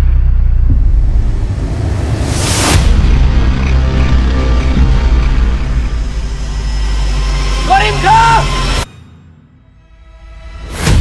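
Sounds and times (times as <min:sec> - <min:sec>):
deep low drone: 0:00.0 - 0:07.7.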